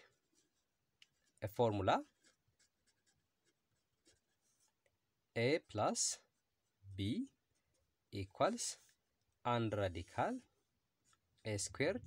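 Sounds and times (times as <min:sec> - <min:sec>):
pen scratching on paper: 0:00.0 - 0:04.9.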